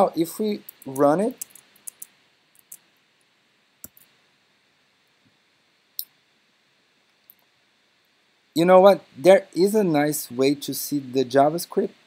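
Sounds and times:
computer mouse clicks: 0:00.7 - 0:02.8, 0:03.8 - 0:04.1.

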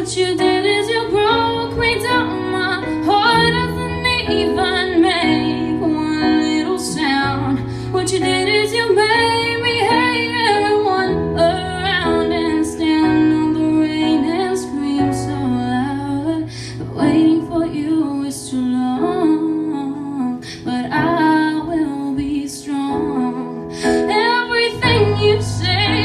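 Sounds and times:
electronic keyboard chords: 0:00.0 - 0:26.0
woman singing: 0:00.0 - 0:26.0.

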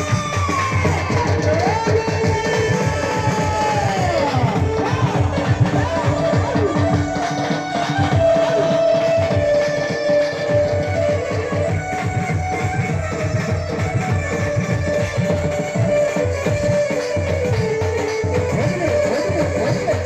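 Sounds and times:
sliding melody line: 0:04.2 - 0:20.0.

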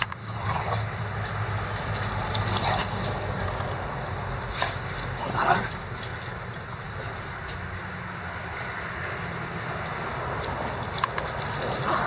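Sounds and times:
dogs scuffling on grass: 0:00.4 - 0:12.0.

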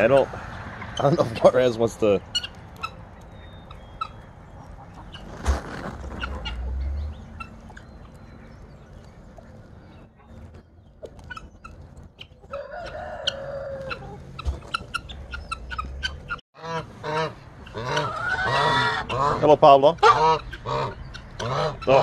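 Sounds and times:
chickens clucking: 0:00.0 - 0:22.0
geese honking: 0:00.0 - 0:22.0
rooster crowing: 0:12.5 - 0:14.4.

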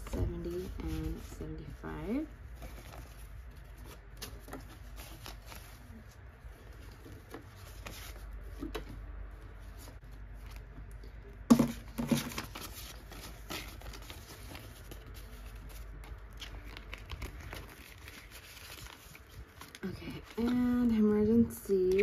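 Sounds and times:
rustling of bills and plastic: 0:00.0 - 0:22.0.

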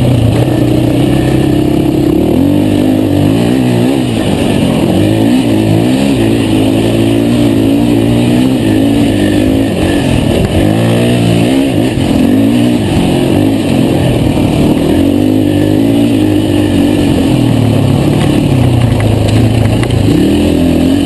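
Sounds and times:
quad engine revving: 0:00.0 - 0:21.0.

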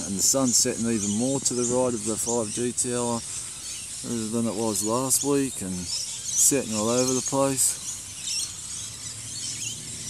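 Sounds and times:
insects hissing: 0:00.0 - 0:10.0.

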